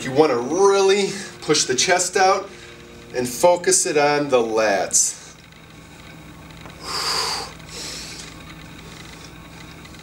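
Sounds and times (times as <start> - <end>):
man breathing out forcefully: 6.8 - 8.2.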